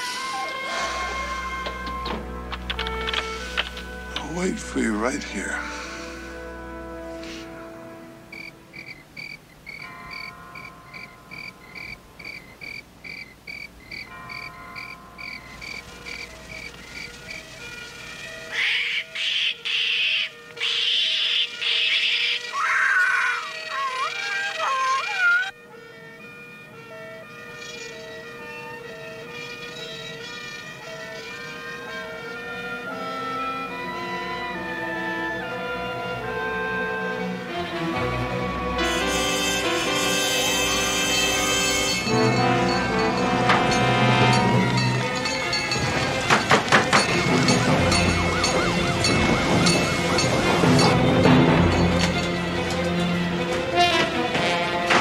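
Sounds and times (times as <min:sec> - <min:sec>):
soft film score music: 0:00.0 - 0:12.7, 0:13.3 - 0:55.0
night chirping: 0:08.3 - 0:25.5
macaw screeching: 0:18.5 - 0:25.6.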